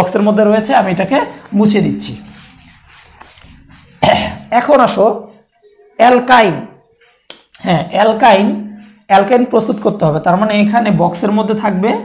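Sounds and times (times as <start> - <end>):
man clearing throat: 4.0 - 4.5.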